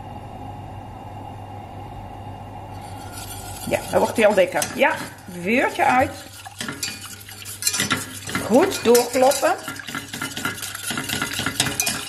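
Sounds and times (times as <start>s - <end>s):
whisk scraping metal saucepan: 2.7s - 12.0s.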